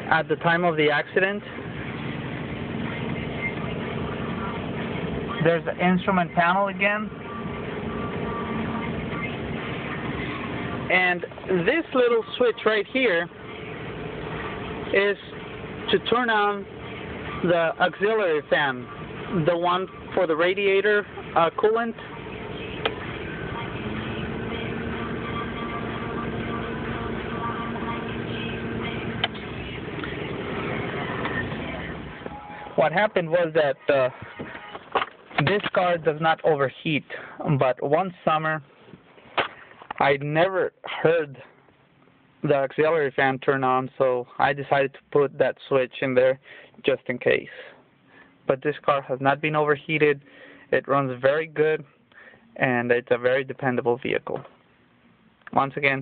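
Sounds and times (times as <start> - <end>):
radiator cooling fan whooshing: 0.0 - 34.8
car engine idling: 0.0 - 44.8.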